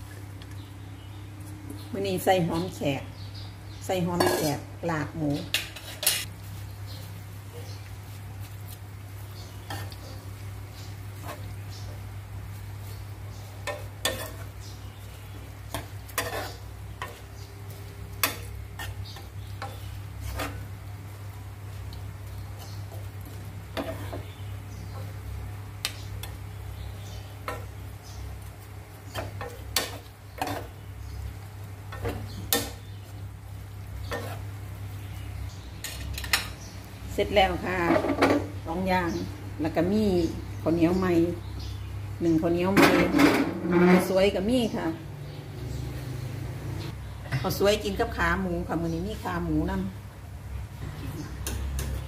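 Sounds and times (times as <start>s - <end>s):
spatula scraping wok: 4.0s - 4.7s, 5.4s - 36.6s, 42.8s - 44.4s
spoon and spatula scraping pan: 4.2s - 4.7s, 5.5s - 6.3s, 9.6s - 10.3s, 11.1s - 11.6s, 13.5s - 14.6s, 15.7s - 20.7s, 22.5s - 25.2s, 27.4s - 27.8s, 29.1s - 30.8s, 34.0s - 34.5s, 35.8s - 36.6s, 42.8s - 44.2s.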